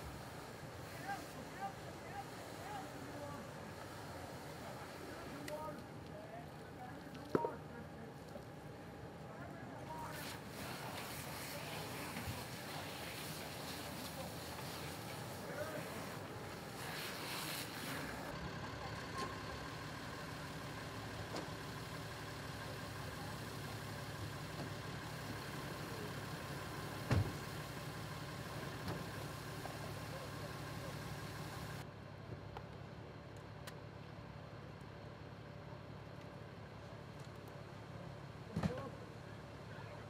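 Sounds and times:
diesel engine and pump running: 0.0 - 40.0
high-pressure hose hissing: 10.1 - 18.3.

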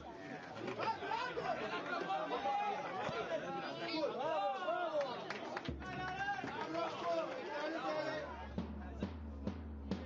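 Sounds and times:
people chattering: 0.0 - 9.2.

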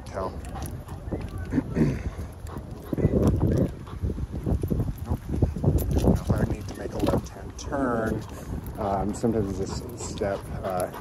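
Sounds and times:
large dog panting: 0.0 - 11.0
wind buffeting microphone: 0.0 - 11.0.

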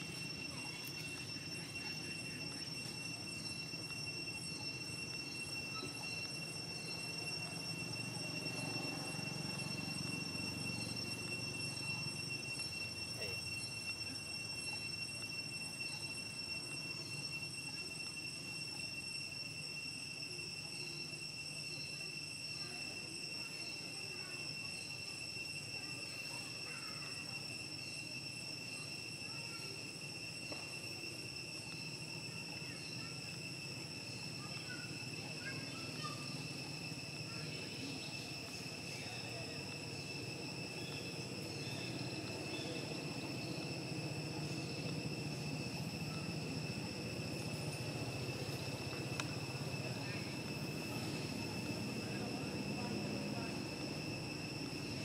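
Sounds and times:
insects droning: 0.0 - 55.0.

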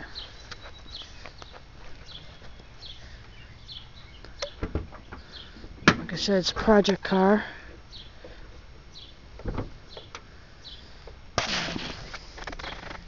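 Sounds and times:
birds chirping: 0.0 - 11.2, 12.2 - 13.0.

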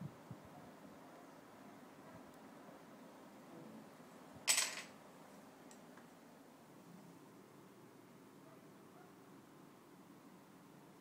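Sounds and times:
faint room hiss: 0.0 - 11.0
small hard object clinking: 4.5 - 4.9.

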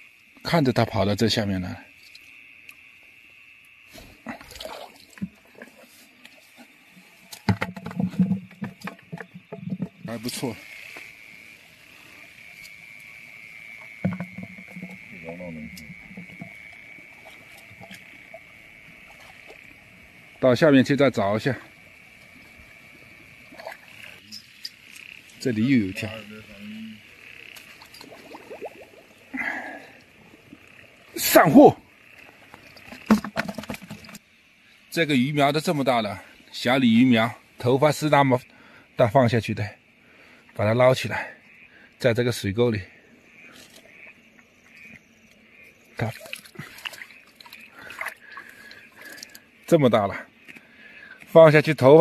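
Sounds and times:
crickets chirring: 0.0 - 52.0
frogs croaking: 0.0 - 52.0
rustling through wet vegetation: 3.7 - 7.5, 45.5 - 49.7.

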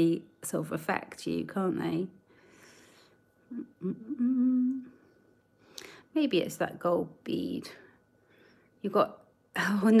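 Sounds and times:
woman humming mmm: 3.4 - 5.0.

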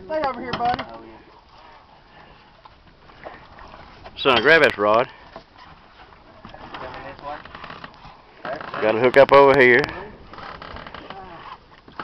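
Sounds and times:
boat background noise: 0.0 - 12.0.

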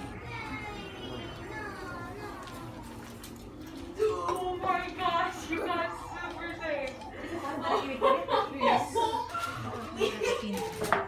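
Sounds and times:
people talking indoors: 0.0 - 11.0.

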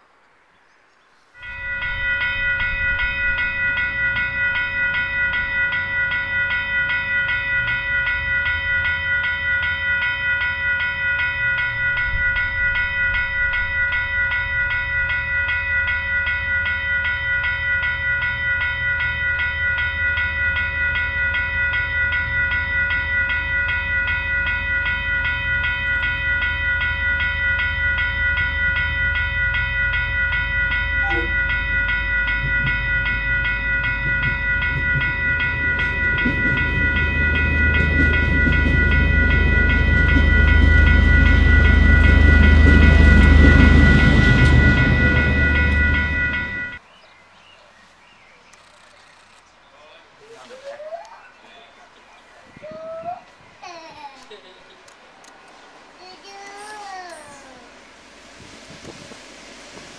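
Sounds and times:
locomotive rumble: 1.4 - 46.8.

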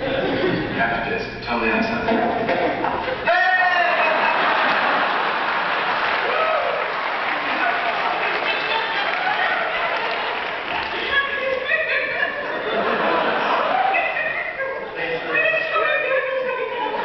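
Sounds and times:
audience applauding: 3.8 - 12.0.

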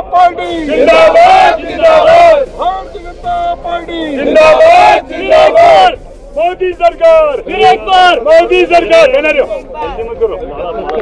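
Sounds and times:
crowd of men shouting: 0.0 - 10.0
long loud shouts: 0.1 - 6.0.

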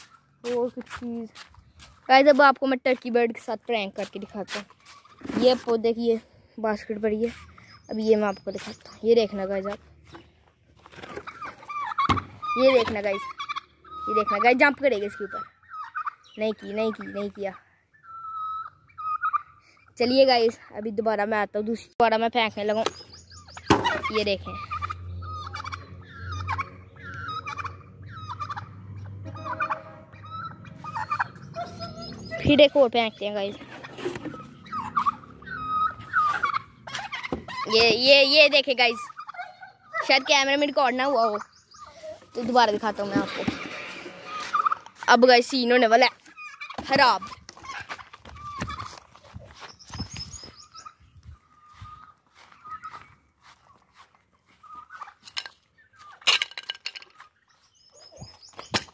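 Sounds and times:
bird chirps: 0.0 - 0.7, 3.8 - 20.7, 22.4 - 56.4, 57.0 - 58.9
turkey gobbling: 4.4 - 5.7, 10.9 - 20.6, 23.0 - 49.4, 50.3 - 56.4, 57.0 - 58.9.

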